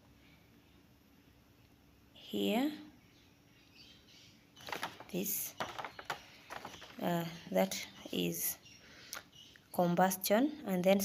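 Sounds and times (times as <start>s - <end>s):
paper crackling: 4.6s - 7.1s
paper rustling: 4.6s - 7.1s.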